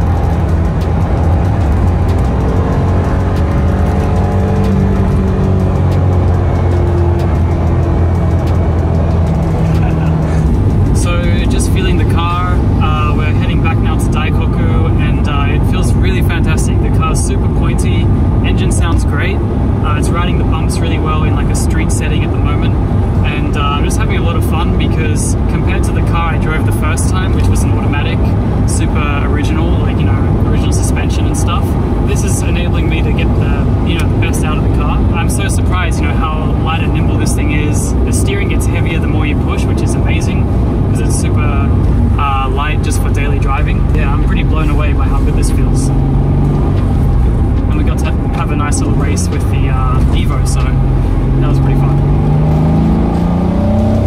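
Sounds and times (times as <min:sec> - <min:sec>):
car engine cruising: 0:00.0 - 0:54.0
tyre and road noise: 0:00.0 - 0:54.0
people talking: 0:09.6 - 0:45.9, 0:47.7 - 0:52.0.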